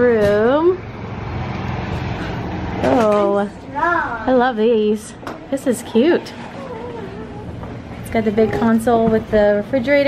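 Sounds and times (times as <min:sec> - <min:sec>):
woman speaking: 0:00.0 - 0:00.8, 0:02.8 - 0:07.1, 0:08.0 - 0:10.0.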